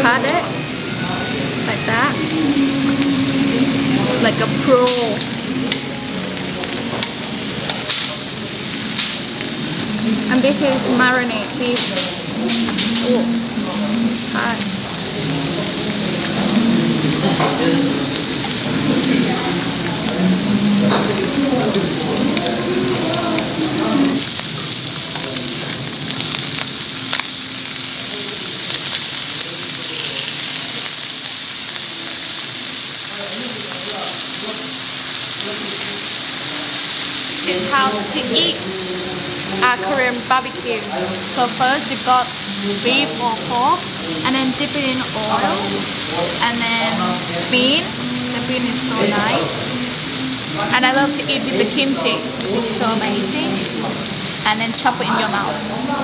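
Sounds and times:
meat sizzling on a grill: 0.0s - 56.0s.

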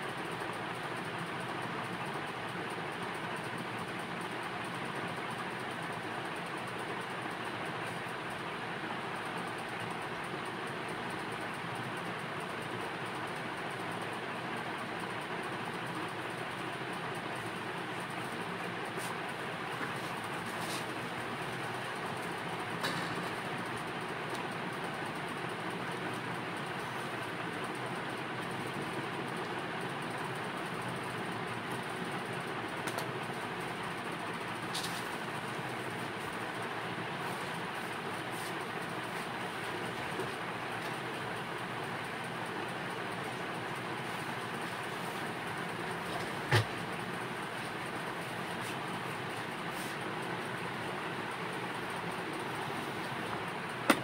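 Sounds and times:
background hiss and hum: 0.0s - 54.0s.

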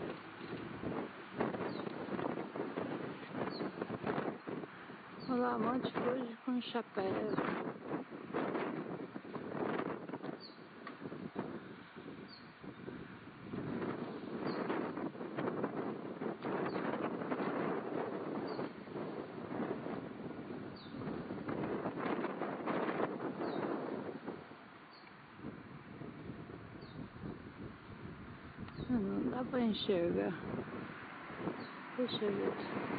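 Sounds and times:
wind buffeting microphone: 0.0s - 32.9s.

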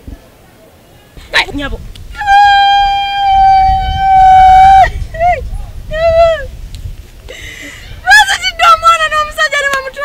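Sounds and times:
woman wailing: 2.2s - 5.4s.

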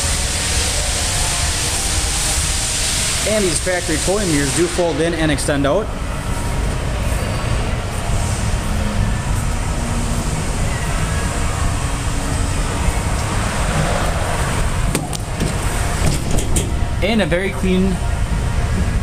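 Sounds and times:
rushing noise with low rumble: 0.0s - 19.0s.

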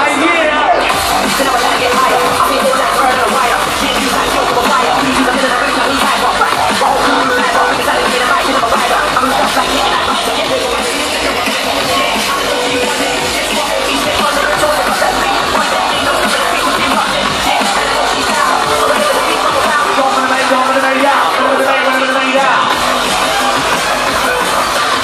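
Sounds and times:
drum and bass over sound system: 0.0s - 25.0s.

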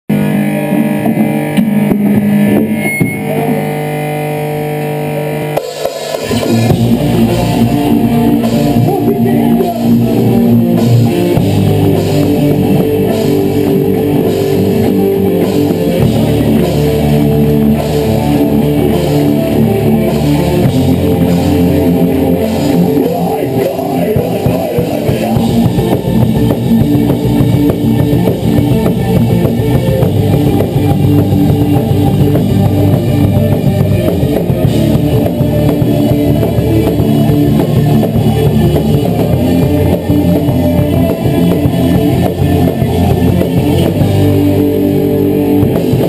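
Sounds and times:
bass guitar: 0.0s - 46.0s
distorted electric guitars: 0.0s - 46.0s
drum kit: 0.1s - 46.0s.

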